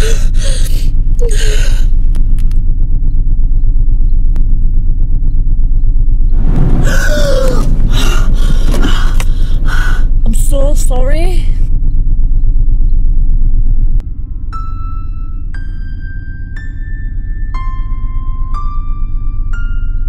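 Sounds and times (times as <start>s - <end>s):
gasping distressed breaths: 0.0s - 2.0s, 6.8s - 10.2s
pulsing low drone: 0.0s - 20.0s.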